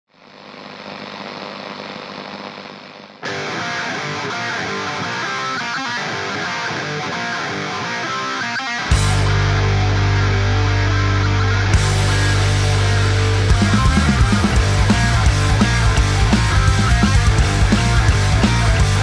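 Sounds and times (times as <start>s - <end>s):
distorted electric guitar: 0.9s - 19.0s
bass and drums: 8.9s - 19.0s.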